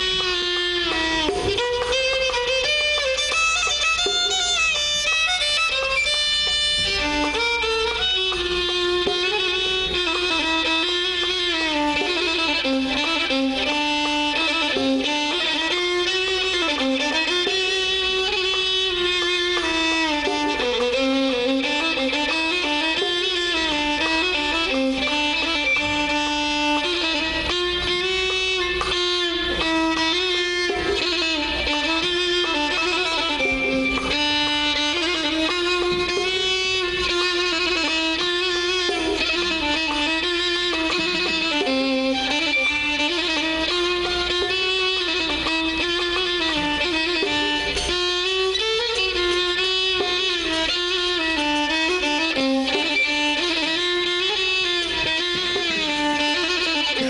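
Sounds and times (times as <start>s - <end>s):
violin section playing melody: 0.0s - 57.0s.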